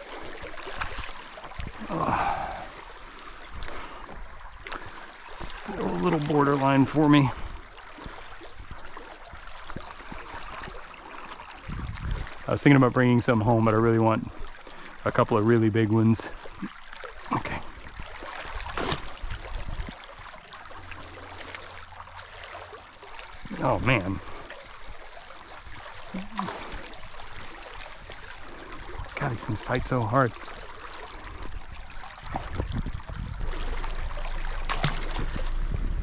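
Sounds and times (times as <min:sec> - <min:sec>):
stream water flowing: 0:00.0 - 0:36.0
person wordless vocal sound: 0:01.8 - 0:02.8, 0:26.2 - 0:26.6
low thump: 0:32.4 - 0:36.0.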